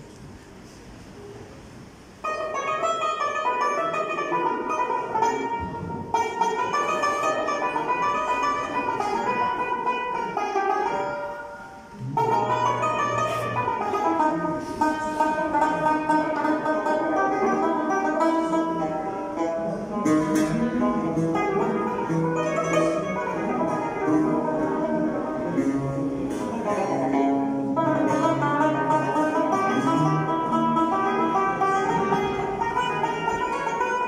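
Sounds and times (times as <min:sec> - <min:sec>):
plucked string ensemble: 0:01.8 - 0:34.0.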